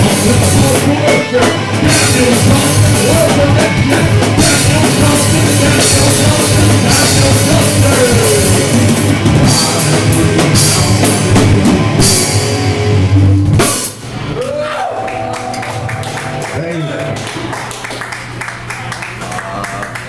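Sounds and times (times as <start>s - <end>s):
sustained guitar tones bending: 0.0s - 17.7s
rock band playing: 0.0s - 18.9s.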